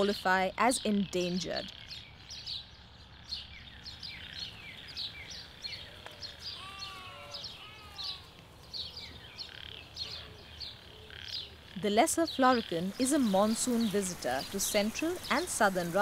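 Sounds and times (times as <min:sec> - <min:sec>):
small birds chirping: 0:00.0 - 0:16.0
lower bird calls: 0:00.9 - 0:16.0.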